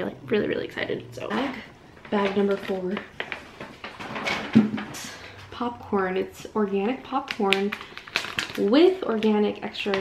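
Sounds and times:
paper and plastic rustling: 1.3 - 5.5, 6.7 - 10.0.

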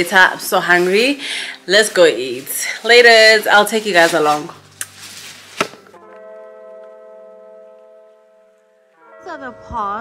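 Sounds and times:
held music chord: 6.0 - 10.0.

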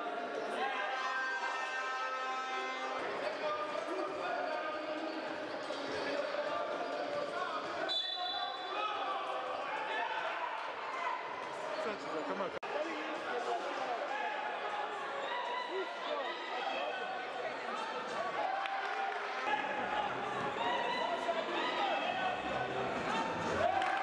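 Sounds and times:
echoing voices in hall: 0.0 - 24.0.

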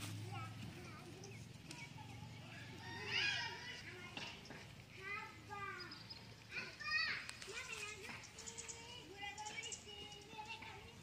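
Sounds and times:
children calling out: 0.0 - 11.0.

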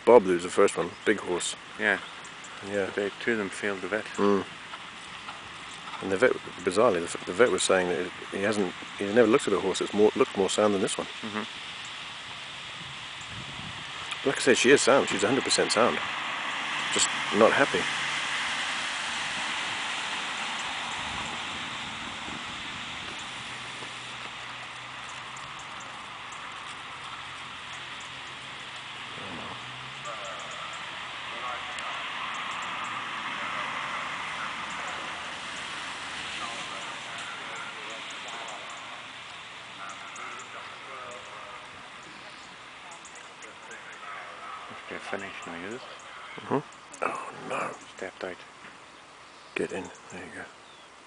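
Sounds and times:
steady outdoor hiss: 0.0 - 51.0
faint distant voices talking: 29.1 - 48.5.

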